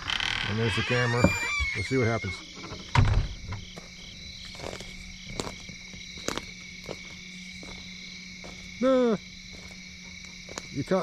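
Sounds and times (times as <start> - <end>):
insects and frogs chorus: 0.0 - 11.0.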